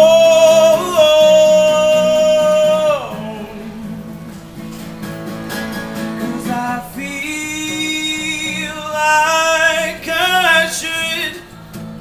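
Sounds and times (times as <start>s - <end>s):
acoustic guitar chords: 0.0s - 12.0s.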